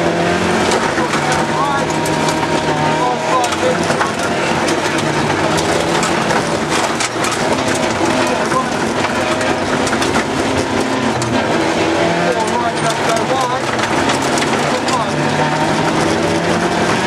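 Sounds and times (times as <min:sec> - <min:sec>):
car engine revving: 0:00.0 - 0:17.0
gravel clattering underneath: 0:00.3 - 0:17.0.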